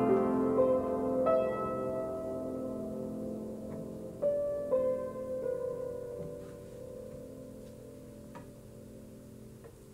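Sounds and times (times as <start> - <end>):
piano notes sustaining: 0.0 - 9.9.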